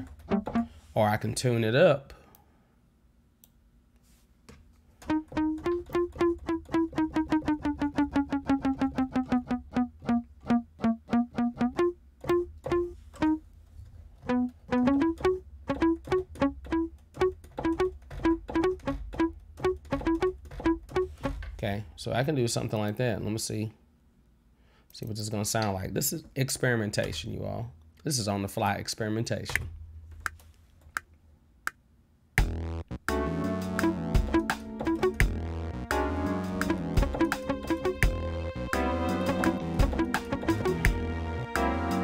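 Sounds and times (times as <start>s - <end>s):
muted plucked bass guitar notes: 0.0s - 0.7s, 5.1s - 13.4s, 14.2s - 21.4s, 32.4s - 42.0s.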